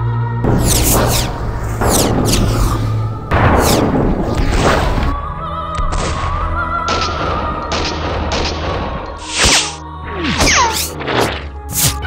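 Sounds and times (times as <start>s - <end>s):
film music with low drone: 0.0s - 12.0s
bullet whistling past: 0.4s - 3.9s
gunfire: 0.4s - 5.0s
loud gunshot: 0.4s - 5.0s.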